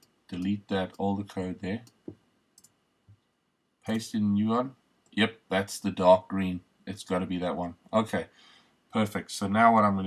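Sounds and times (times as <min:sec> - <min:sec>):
faint computer clicks: 0:01.8 - 0:03.3.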